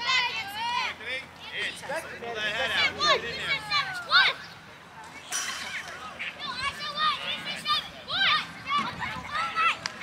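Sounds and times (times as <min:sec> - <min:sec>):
children shouting and cheering: 0:00.0 - 0:01.7, 0:02.6 - 0:04.6, 0:05.6 - 0:10.0.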